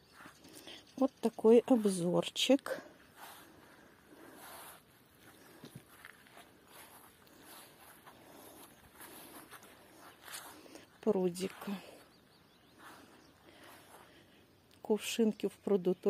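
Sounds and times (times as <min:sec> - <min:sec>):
faint outdoor background: 0:00.0 - 0:16.0.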